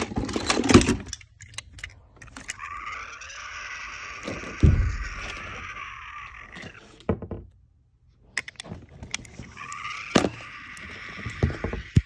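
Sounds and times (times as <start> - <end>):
toy cars clattering together: 0.0 - 3.0
toy train motor whirring: 1.8 - 6.8, 9.2 - 12.0.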